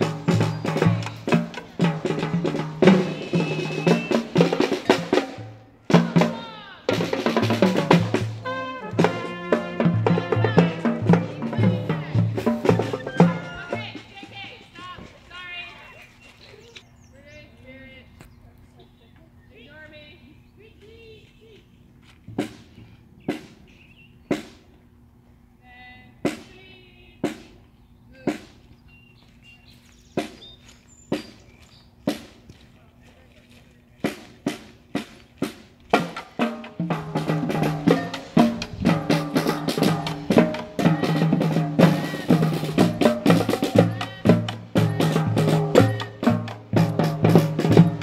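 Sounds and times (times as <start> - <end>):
marching band drum strikes: 0.0 - 15.1, 22.3 - 24.7, 26.2 - 27.6, 34.0 - 48.0
marching band playing: 0.0 - 16.0, 22.3 - 25.2, 26.0 - 28.7, 31.1 - 32.5, 33.4 - 48.0
faint voices chattering: 9.0 - 22.3, 31.2 - 35.4.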